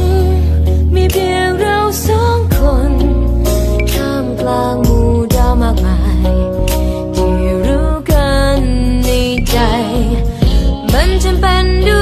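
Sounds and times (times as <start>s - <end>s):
pop band with steady bass: 0.0s - 12.0s
woman singing: 0.0s - 12.0s.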